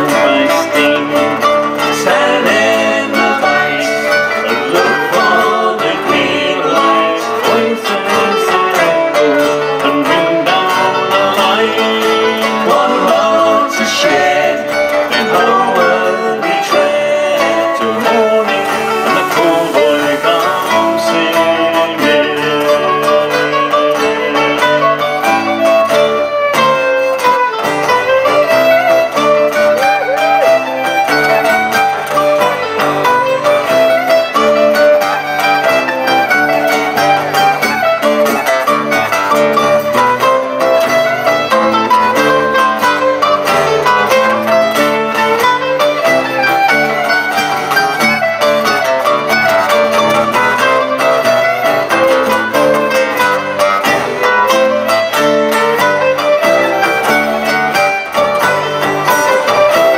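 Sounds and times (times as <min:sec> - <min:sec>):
bowed fiddle: 0:00.0 - 0:59.9
mandolin: 0:00.0 - 0:59.9
strummed acoustic guitar: 0:00.0 - 0:59.9.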